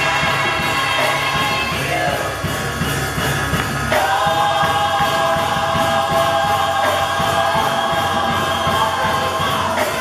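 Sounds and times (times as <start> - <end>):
choir singing chord: 3.9 - 10.0.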